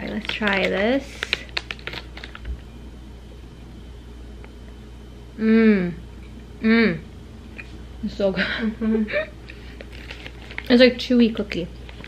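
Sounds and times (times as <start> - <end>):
plastic wrapper crinkling: 0.0 - 2.6, 9.7 - 12.0.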